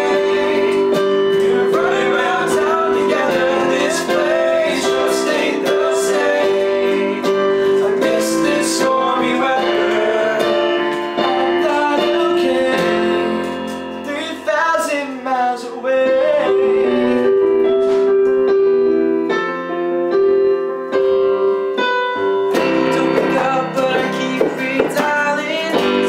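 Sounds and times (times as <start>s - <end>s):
wordless singing: 0.0s - 17.3s, 22.9s - 26.0s
acoustic guitar: 0.0s - 18.6s, 22.2s - 26.0s
piano playing sustained chords: 0.0s - 26.0s.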